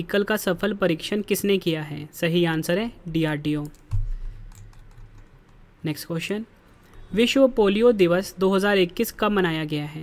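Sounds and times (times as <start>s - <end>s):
low steady hum: 0.0s - 10.0s
keyboard and mouse clicks: 3.5s - 5.6s.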